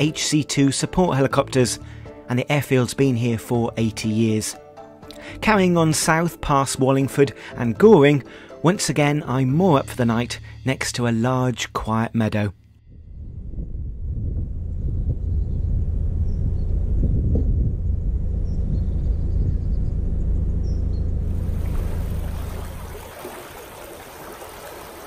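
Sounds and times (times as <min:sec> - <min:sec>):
boat engine rumble: 0:09.6 - 0:25.0
wind on microphone: 0:12.8 - 0:20.3
turbulent water rushing: 0:21.3 - 0:25.0.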